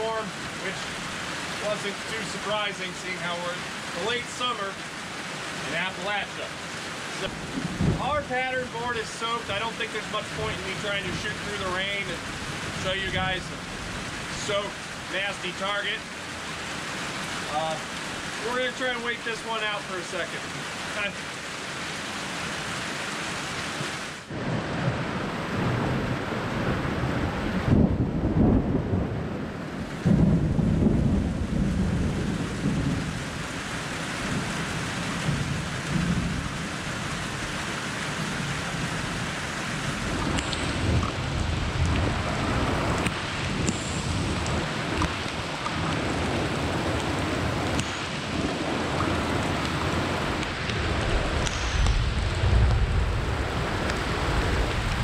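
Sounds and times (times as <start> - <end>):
heavy rain: 0.0 - 55.0
rolls of thunder: 7.3 - 8.3, 24.3 - 33.4, 50.8 - 55.0.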